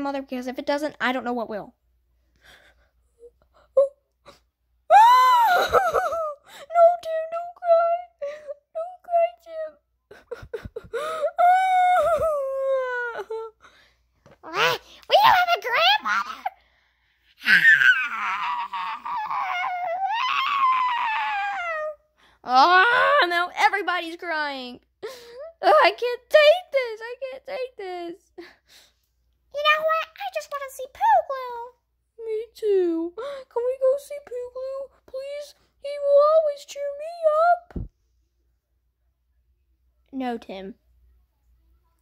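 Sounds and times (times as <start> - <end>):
child wailing: 17.4 - 22.0.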